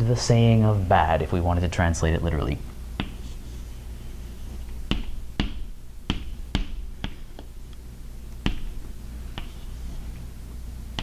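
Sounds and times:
steady low hum: 0.0s - 11.0s
chalk tapping on chalkboard: 3.0s - 3.4s, 4.9s - 7.5s, 8.4s - 9.8s.

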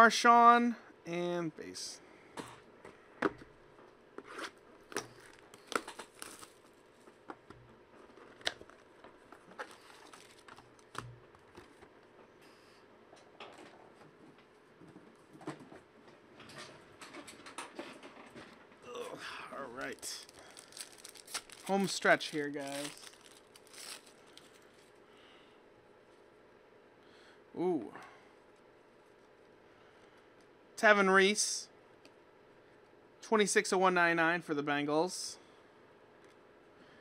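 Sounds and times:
foil wrapper tearing and crinkling: 4.9s - 7.0s, 9.5s - 11.0s, 19.6s - 24.9s.

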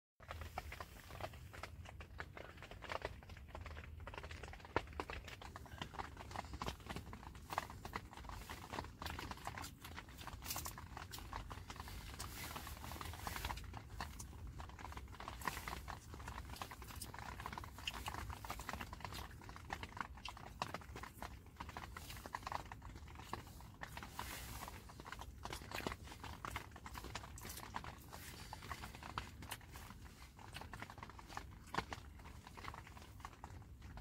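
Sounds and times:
low steady rumble: 0.2s - 34.0s.

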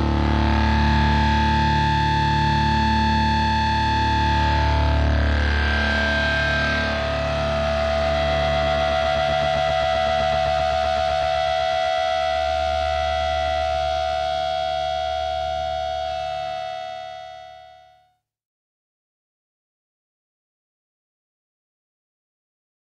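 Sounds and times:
bass: 0.0s - 17.9s
distorted electric guitar chord: 0.0s - 18.0s.

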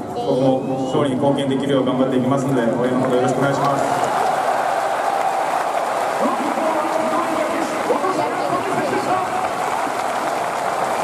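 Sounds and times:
stadium crowd applauding: 2.9s - 11.0s.

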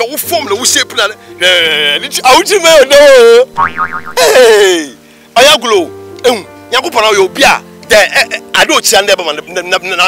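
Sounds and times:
cartoon boing: 3.6s - 4.4s.

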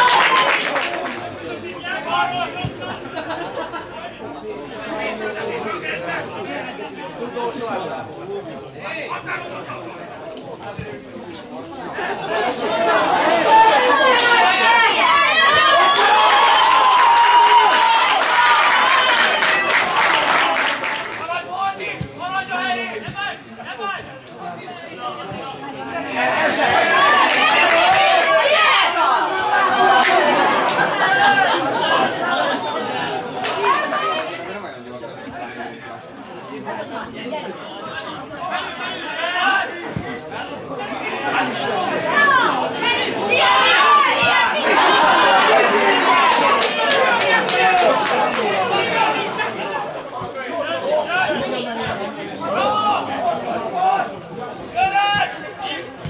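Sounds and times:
men shouting and chattering: 0.8s - 56.0s
voices calling out: 36.5s - 56.0s.

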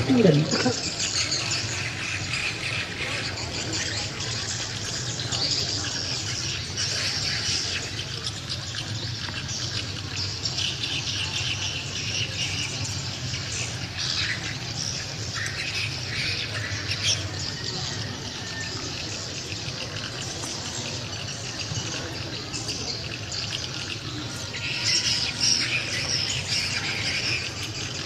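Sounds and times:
small birds chirping and squawking: 0.0s - 28.0s.

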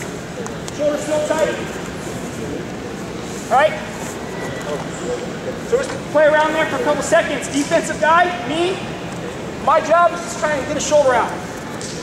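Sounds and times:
voices in a gym hall: 0.0s - 12.0s
man speaking: 0.8s - 1.7s, 3.5s - 3.9s, 5.6s - 8.9s, 9.6s - 11.5s.

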